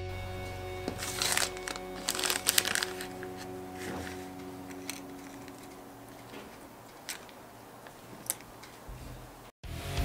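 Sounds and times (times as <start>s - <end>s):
background music: 0.0s - 7.5s, 9.6s - 10.0s
plastic bag crinkling: 0.9s - 8.6s.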